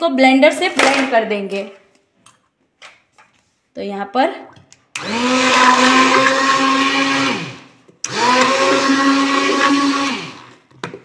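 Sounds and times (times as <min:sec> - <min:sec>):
electric hand blender running: 0:05.0 - 0:10.6.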